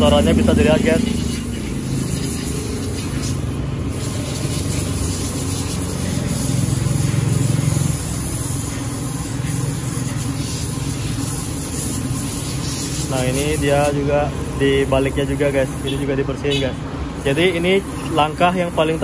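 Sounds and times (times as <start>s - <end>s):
aerosol spray hissing: 0.0s - 19.0s.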